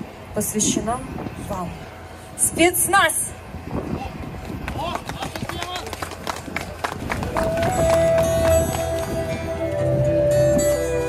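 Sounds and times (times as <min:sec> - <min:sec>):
small group clapping: 0:04.6 - 0:09.3.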